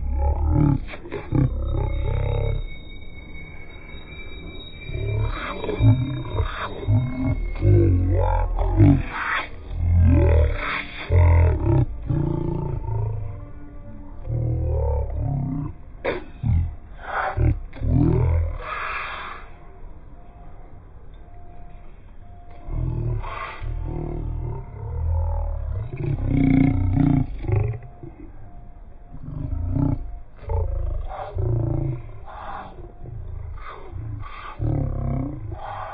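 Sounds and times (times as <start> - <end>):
man growling: 0.0 - 2.8, 4.8 - 13.4, 14.2 - 18.9, 22.6 - 28.5, 29.1 - 35.9
deep rumble: 0.0 - 18.7, 21.2 - 35.9.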